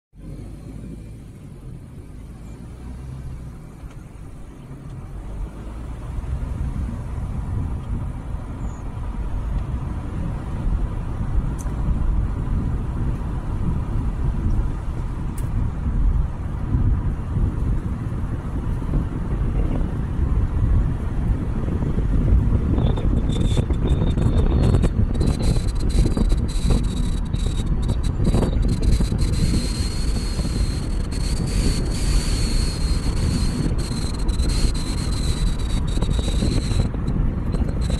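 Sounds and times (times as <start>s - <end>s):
vehicle road and wind rumble: 0.1s - 37.9s.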